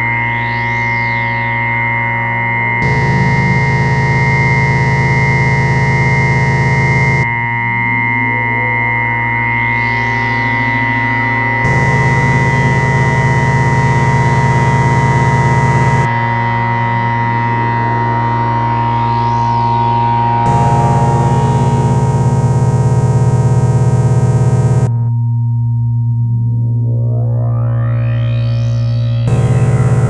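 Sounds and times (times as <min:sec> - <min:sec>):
dark ambient synthesizer drones: 0:00.0 - 0:25.2, 0:26.2 - 0:30.0
rough noisy synth layer: 0:02.8 - 0:16.1, 0:17.5 - 0:24.9, 0:28.2 - 0:30.0.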